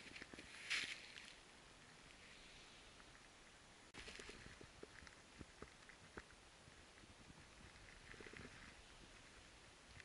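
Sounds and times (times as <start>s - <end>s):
soft crunches in snow: 0.0s - 1.4s.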